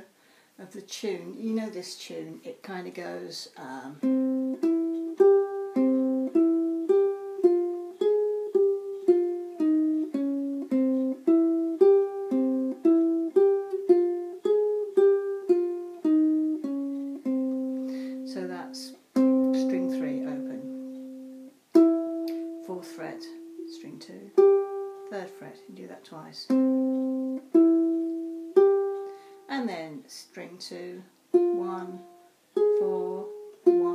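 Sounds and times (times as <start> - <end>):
ukulele picked melody: 4.0 - 29.8, 31.2 - 33.9.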